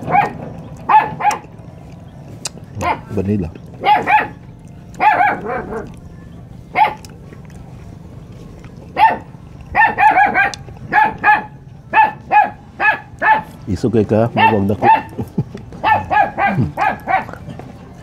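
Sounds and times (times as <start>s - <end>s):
dog barking: 0.0s - 1.5s, 2.8s - 3.2s, 3.8s - 6.0s, 6.7s - 7.1s, 8.9s - 13.6s, 14.3s - 15.2s, 15.8s - 17.5s.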